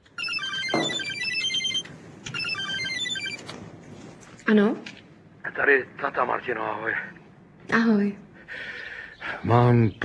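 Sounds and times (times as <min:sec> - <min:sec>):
phone ringtone electronic melody: 0:00.2 - 0:03.5.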